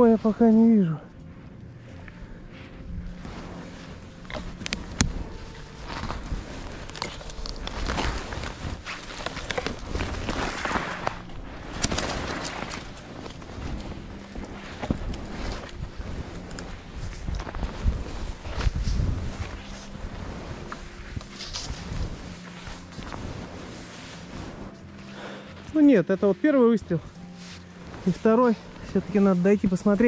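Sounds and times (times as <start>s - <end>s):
skis crunching through snow: 0.0s - 30.0s.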